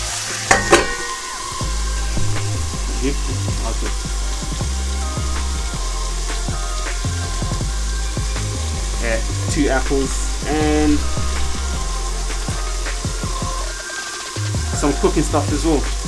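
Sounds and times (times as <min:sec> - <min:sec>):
food sizzling in a pan: 0:00.0 - 0:16.0.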